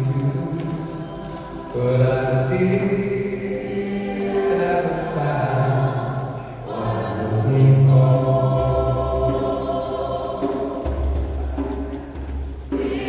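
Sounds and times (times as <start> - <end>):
gospel choir singing: 0.0 - 13.0.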